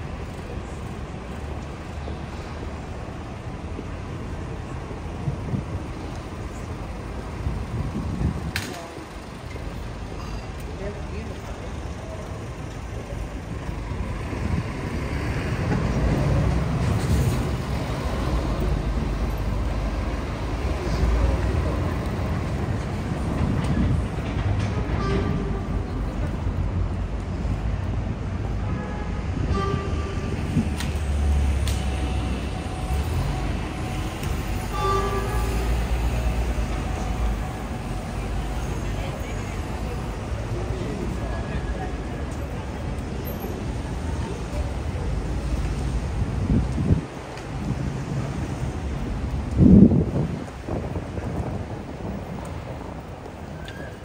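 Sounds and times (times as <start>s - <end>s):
passers-by talking: 0.0s - 54.0s
rumble of buses and vehicles: 0.0s - 54.0s.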